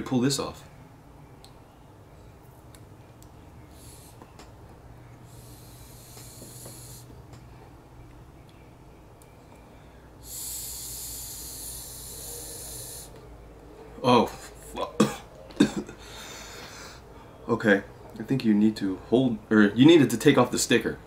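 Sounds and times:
vape pen draw hiss: 0:03.7 - 0:04.3, 0:05.2 - 0:07.2, 0:10.2 - 0:13.2.

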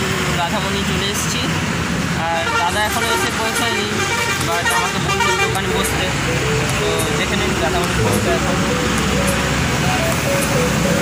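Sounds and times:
passing motor vehicles: 0:00.0 - 0:11.0
people's voices: 0:02.2 - 0:10.8.

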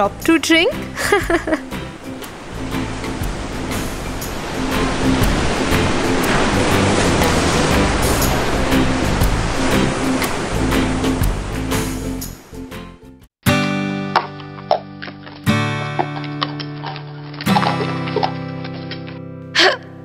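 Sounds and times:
background music: 0:00.0 - 0:20.0
ocean surf rushing: 0:01.0 - 0:12.7.

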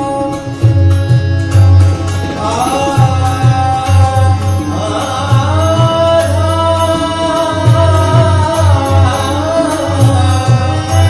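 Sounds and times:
harmonium: 0:00.0 - 0:11.0
tabla strokes: 0:00.0 - 0:11.0
man singing long gliding notes: 0:01.9 - 0:11.0.

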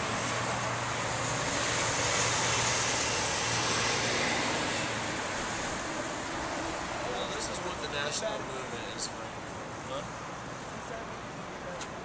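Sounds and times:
passing car tyre noise: 0:00.0 - 0:10.9.

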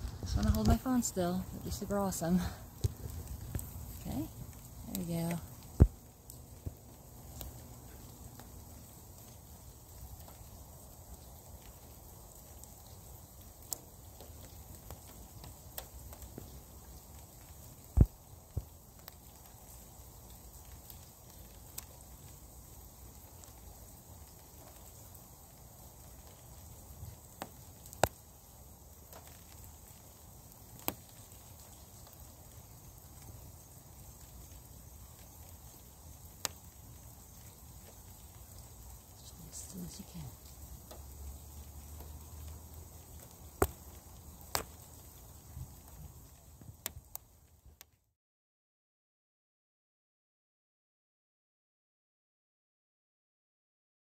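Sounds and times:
faint steady hiss: 0:00.0 - 0:48.1.

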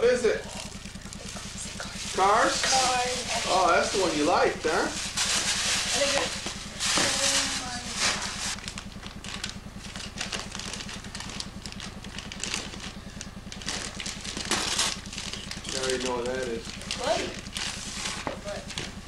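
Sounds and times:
steady low hum: 0:00.0 - 0:19.0
wrapping paper rustling: 0:00.4 - 0:19.0.

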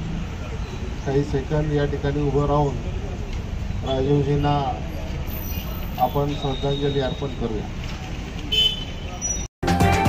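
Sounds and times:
street traffic: 0:00.0 - 0:10.0
intro music with steady beat: 0:09.6 - 0:10.0.

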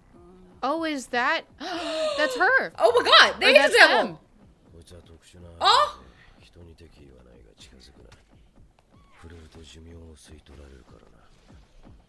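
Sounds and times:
man speaking: 0:03.4 - 0:04.2.

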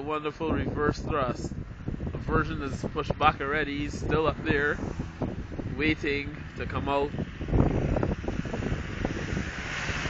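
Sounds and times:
wind buffeting microphone: 0:00.0 - 0:10.0
low rumble: 0:00.5 - 0:10.0.

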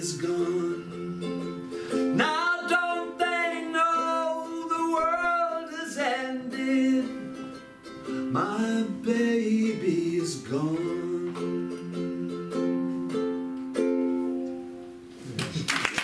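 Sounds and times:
man singing: 0:00.0 - 0:12.6
strummed ukulele: 0:00.0 - 0:15.7.

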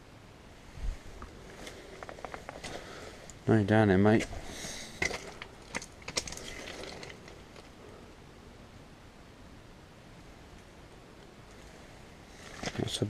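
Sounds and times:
outdoor background hiss: 0:00.0 - 0:13.0
faint rustles and clicks: 0:00.7 - 0:03.5, 0:04.1 - 0:08.1, 0:10.4 - 0:13.0.

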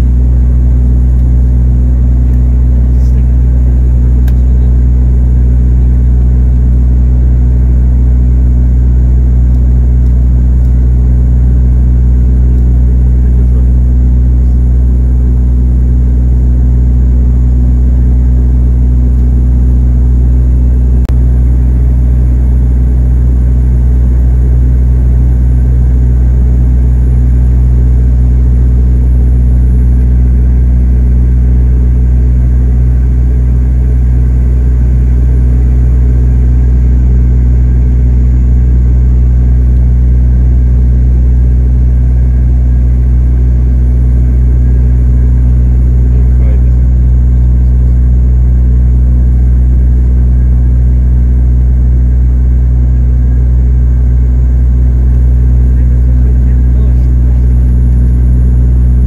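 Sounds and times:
airliner engine drone in cabin: 0:00.0 - 0:59.0.

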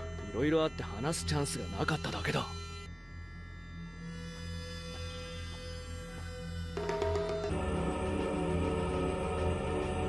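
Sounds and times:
low droning music: 0:00.0 - 0:10.0.

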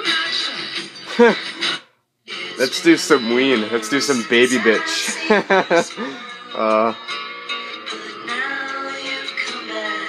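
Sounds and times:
song through small speakers: 0:00.0 - 0:10.0.

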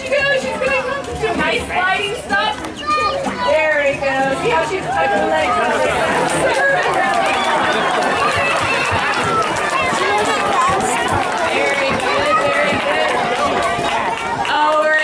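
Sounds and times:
crowd chattering: 0:00.0 - 0:15.0.

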